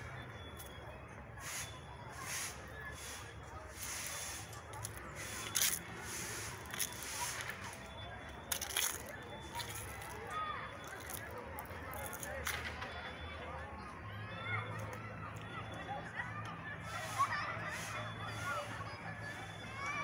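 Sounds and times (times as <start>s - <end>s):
distant voices: 0.0s - 20.0s.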